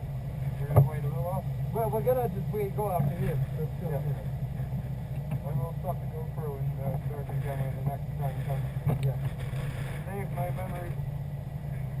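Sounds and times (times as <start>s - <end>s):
car engine idling: 0.0s - 12.0s
voices talking: 0.5s - 9.4s, 10.0s - 11.0s.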